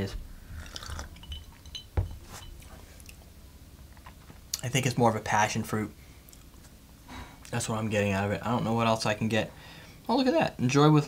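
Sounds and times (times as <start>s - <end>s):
ice clinking in glass: 0.6s - 2.7s
glass set down on bar: 1.3s - 2.5s.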